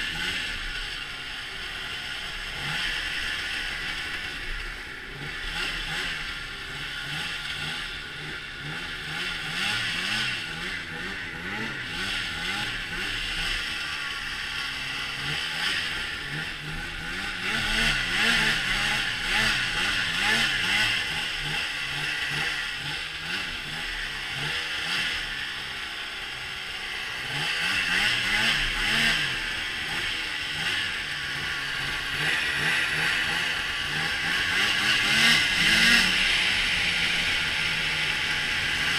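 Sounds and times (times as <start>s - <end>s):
snowmobile engine revving: 0.0s - 38.9s.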